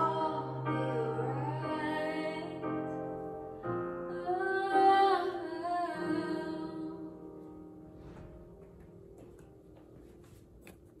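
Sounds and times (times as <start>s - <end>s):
karaoke backing track chord: 0.0s - 7.5s.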